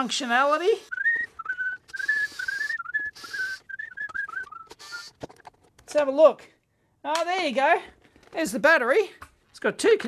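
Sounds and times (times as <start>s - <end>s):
man whistling a tune: 0.9s - 5.1s.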